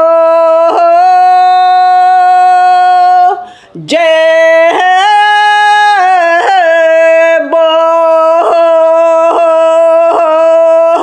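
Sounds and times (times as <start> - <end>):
woman singing a long note: 0.0 - 11.0.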